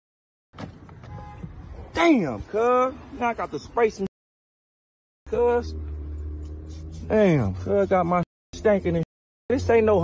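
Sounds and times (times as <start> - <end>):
outdoor background noise: 0.5 - 4.1.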